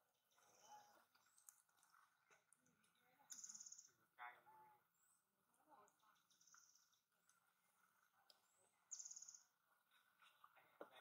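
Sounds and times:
bird trilled call: 8.9s - 9.5s.

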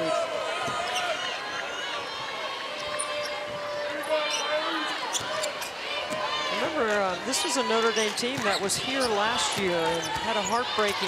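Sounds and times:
sneakers squeaking on floor: 3.0s - 5.8s, 7.9s - 11.0s.

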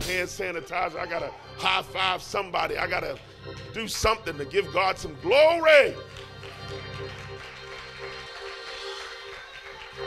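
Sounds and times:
electric keyboard sustained chords: 0.0s - 10.0s.

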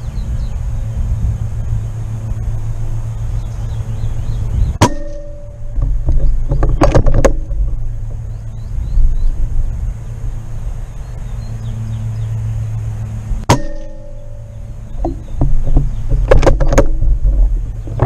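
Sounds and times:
steady low rumble: 0.0s - 18.0s.

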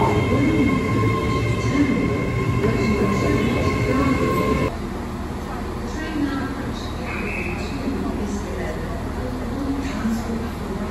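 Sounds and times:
station background: 0.0s - 4.8s
train rumble with high whine: 0.0s - 10.9s.

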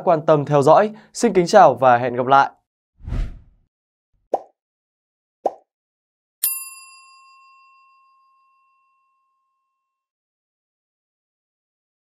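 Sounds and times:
bell-like ding: 6.4s - 9.6s.

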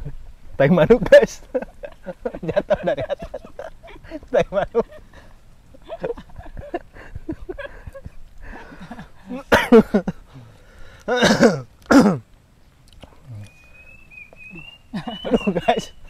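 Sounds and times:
men laughing or exclaiming: 0.9s - 10.5s, 14.5s - 16.0s
high whistled bird call: 13.4s - 16.0s.

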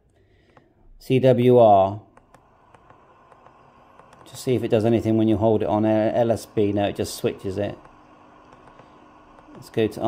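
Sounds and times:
radio buttons clicking: 2.1s - 4.4s, 7.7s - 9.8s.

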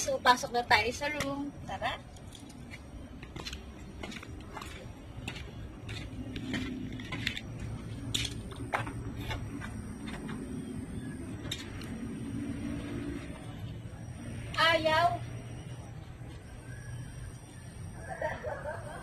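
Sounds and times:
footsteps on concrete steps: 2.5s - 10.5s.

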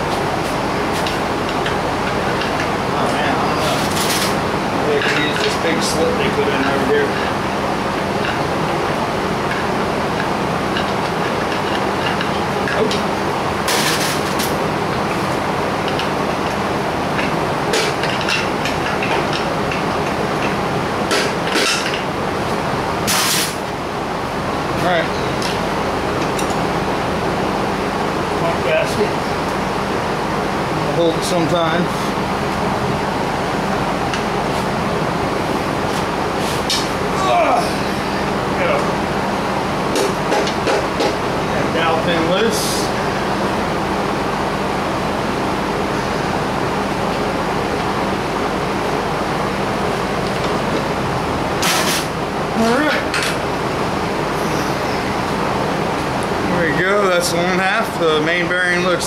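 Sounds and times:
steady background hum: 0.0s - 59.0s.

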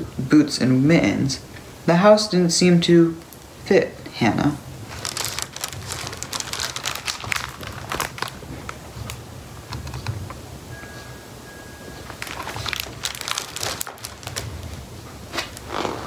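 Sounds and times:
book pages rustling and crinkling: 4.8s - 10.4s, 12.0s - 16.0s.

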